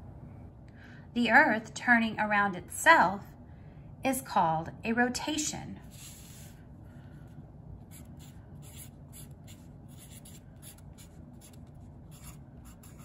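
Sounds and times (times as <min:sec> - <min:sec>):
marker scratching on paper: 0:05.9 - 0:06.6, 0:07.9 - 0:13.0.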